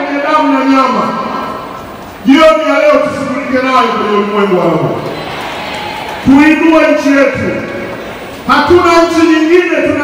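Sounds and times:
man's voice over pa system: 0.0 - 5.1, 6.2 - 7.8, 8.4 - 10.0.

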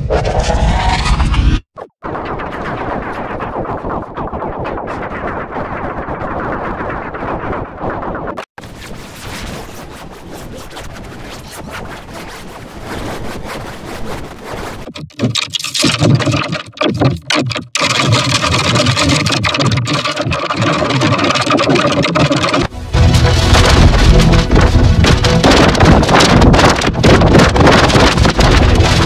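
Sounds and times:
distorted logo music: 0.0 - 4.8, 22.4 - 29.0.

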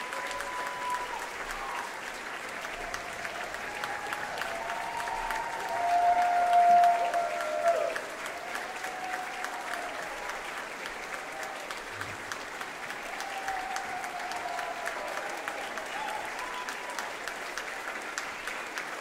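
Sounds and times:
crowd applauding: 0.0 - 19.0.

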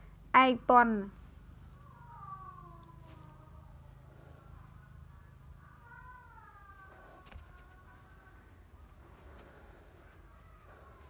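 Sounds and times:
cat meowing faintly: 1.6 - 11.0.

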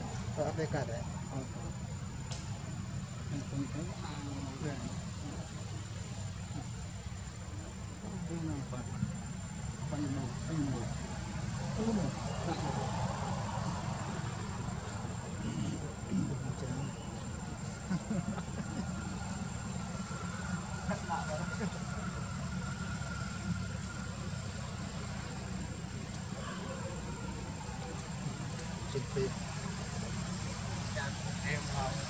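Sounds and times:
distant voices: 0.0 - 32.0.

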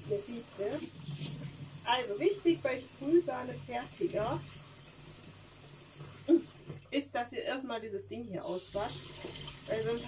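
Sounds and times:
tap running into sink: 9.1 - 10.0.

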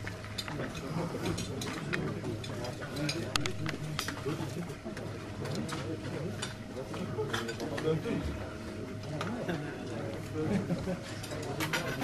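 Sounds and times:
people talking: 0.3 - 12.0.

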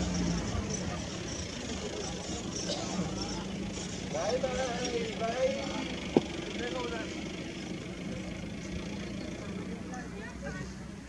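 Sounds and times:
faint people talking: 0.0 - 11.0.

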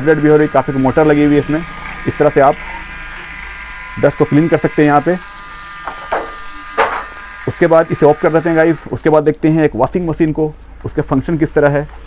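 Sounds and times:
toy motor whining: 0.0 - 9.0.

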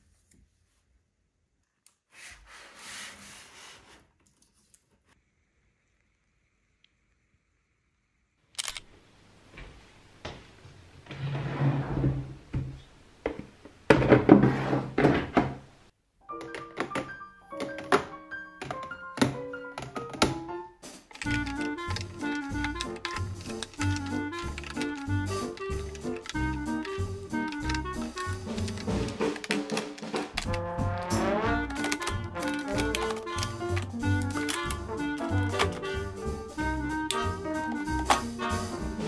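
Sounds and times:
light background music: 16.2 - 39.0
woven basket rustling: 20.9 - 30.5, 31.7 - 36.5
plastic knocks and clicks: 31.7 - 35.8.

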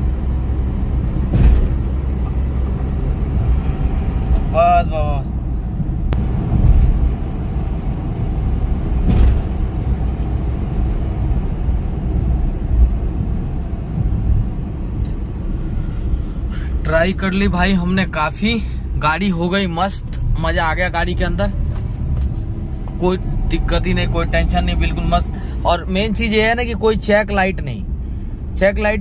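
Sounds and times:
car engine and tyres droning: 0.0 - 29.0.

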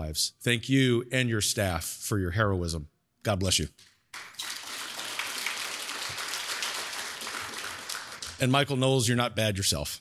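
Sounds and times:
audience applauding: 4.2 - 8.5.

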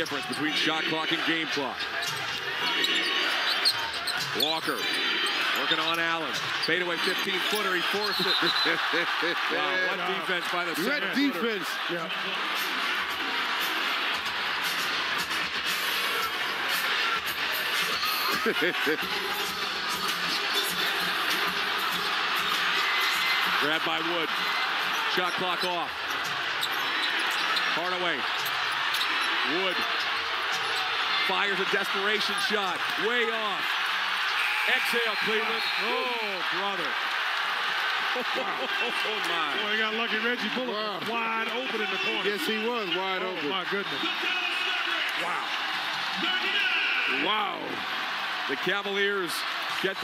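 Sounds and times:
arena crowd noise: 0.0 - 50.0.

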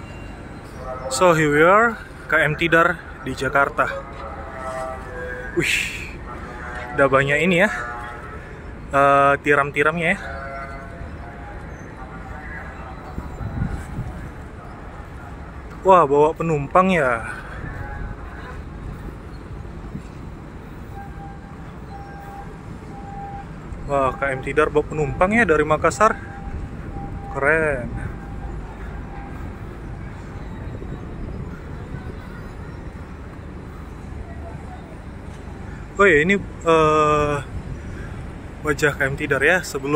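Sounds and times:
busy port quay noise: 0.0 - 39.9
harbour background rumble: 0.0 - 39.9.

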